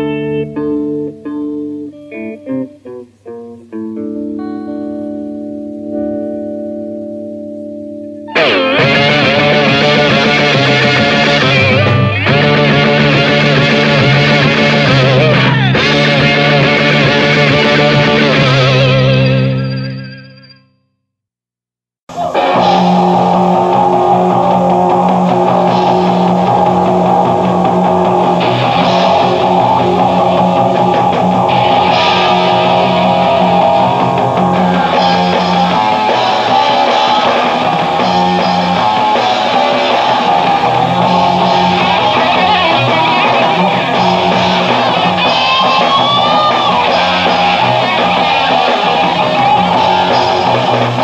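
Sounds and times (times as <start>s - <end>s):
bass guitar: 0.0s - 20.6s, 22.1s - 51.0s
electric guitar: 0.0s - 20.6s, 22.1s - 51.0s
drum kit: 8.3s - 19.5s, 22.1s - 51.0s.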